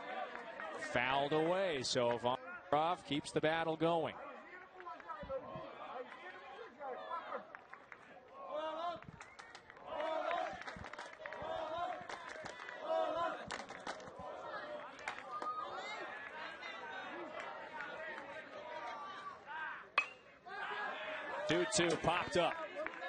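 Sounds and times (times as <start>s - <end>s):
crowd chattering and calling out: 0.0s - 9.0s, 11.2s - 23.0s
bat hitting baseball: 20.0s - 20.3s.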